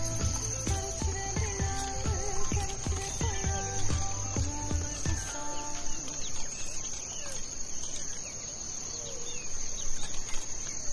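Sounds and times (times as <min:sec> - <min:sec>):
background music: 0:00.0 - 0:06.3
high insect trill: 0:00.0 - 0:10.9.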